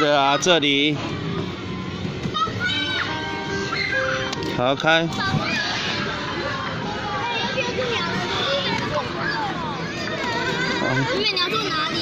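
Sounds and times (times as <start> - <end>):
young child's voice: 2.3 - 3.9, 7.0 - 12.0.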